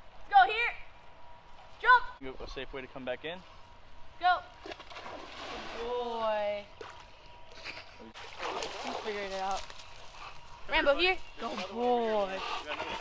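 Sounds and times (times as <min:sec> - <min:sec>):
dog splashing in water: 0:08.2 - 0:09.6.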